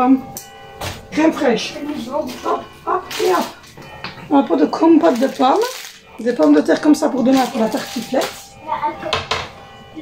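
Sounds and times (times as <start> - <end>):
child's voice: 8.6 - 10.0
groceries knocking on counter: 9.1 - 9.6.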